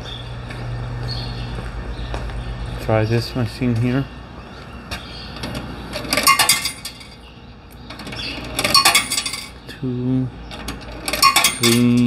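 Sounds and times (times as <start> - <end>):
coins clinking into coin box: 6.1 - 7.2, 8.6 - 9.6, 11.0 - 12.0.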